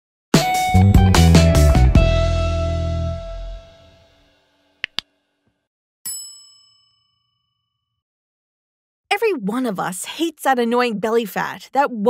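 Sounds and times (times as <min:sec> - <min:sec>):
bell ding: 0:06.1 - 0:08.0.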